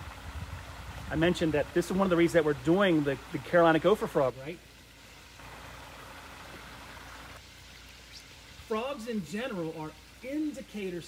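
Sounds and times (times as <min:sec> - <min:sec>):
water trickling over rocks: 0:00.0 - 0:11.0.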